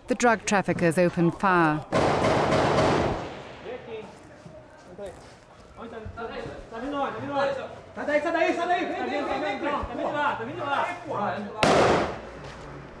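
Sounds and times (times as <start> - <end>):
loud bang: 1.9 - 4.1, 11.6 - 12.2.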